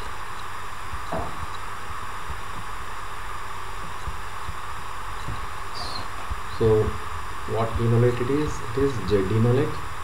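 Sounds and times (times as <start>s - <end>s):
microphone hiss and hum: 0.0s - 10.0s
soft low thumps: 0.0s - 10.0s.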